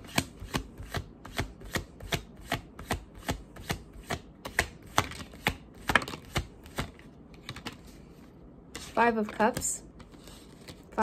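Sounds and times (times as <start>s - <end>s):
cards being shuffled: 0.1s - 8.1s, 8.7s - 11.0s.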